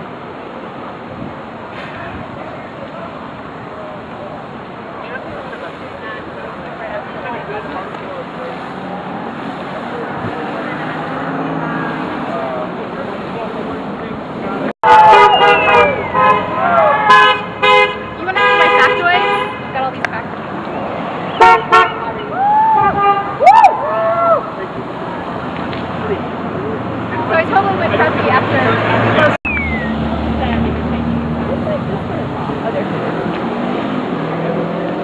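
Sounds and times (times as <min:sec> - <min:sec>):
street traffic: 0:00.0 - 0:35.0
voices calling out: 0:01.7 - 0:35.0
car horns honking: 0:14.8 - 0:19.9, 0:21.3 - 0:23.4.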